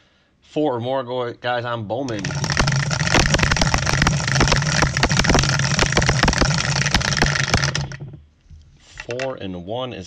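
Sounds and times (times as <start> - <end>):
dice rattling in plastic dome: 2.1 - 8.2
motor hum: 2.1 - 8.3.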